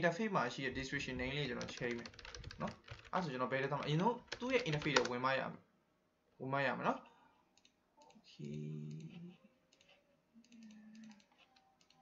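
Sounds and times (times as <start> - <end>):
mouse and keyboard clicks: 1.5 - 5.1, 9.7 - 12.0
man humming: 8.4 - 9.5.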